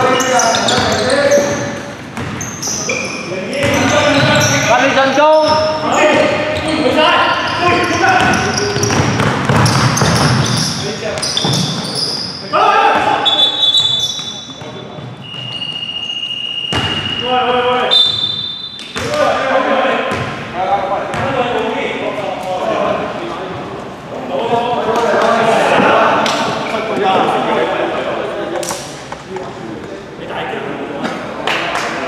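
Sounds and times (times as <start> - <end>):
shoe squeaks: 0.0 - 12.5, 13.1 - 19.2
players calling out: 0.0 - 20.2.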